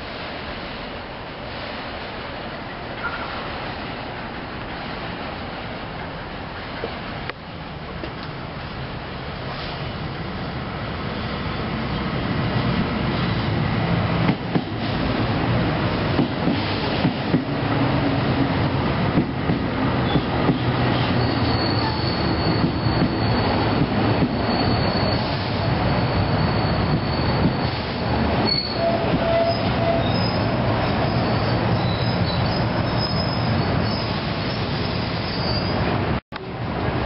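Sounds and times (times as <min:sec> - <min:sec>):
wheels rumbling on rail: 0:00.0 - 0:37.0
high wheel squeal: 0:20.9 - 0:35.9.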